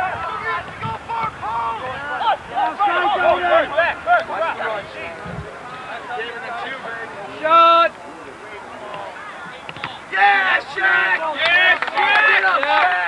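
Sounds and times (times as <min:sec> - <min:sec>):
people shouting over one another: 0:00.0 - 0:04.6, 0:10.1 - 0:13.0.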